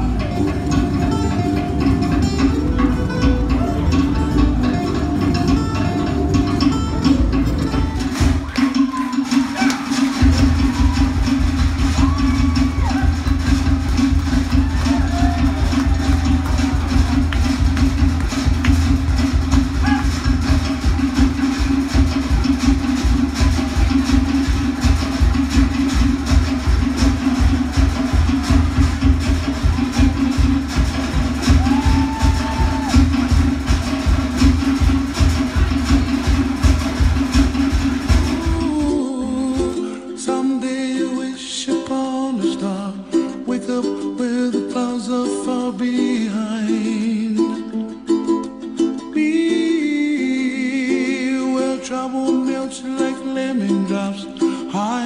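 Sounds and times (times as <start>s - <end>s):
deep bass line: 0.0s - 8.6s, 10.2s - 39.8s
fast drumming: 0.0s - 39.9s
wooden percussion: 0.0s - 40.0s.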